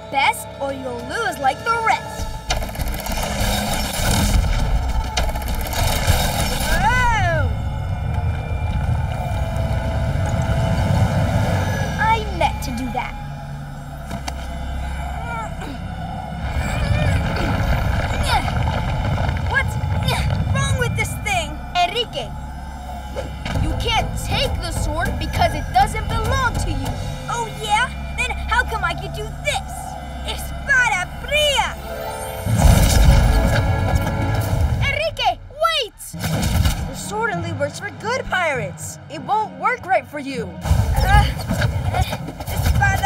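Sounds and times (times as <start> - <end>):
cartoon background music: 0.0 - 7.6, 9.4 - 18.8, 19.5 - 22.4, 23.0 - 43.0
sound effects: 1.8 - 35.1.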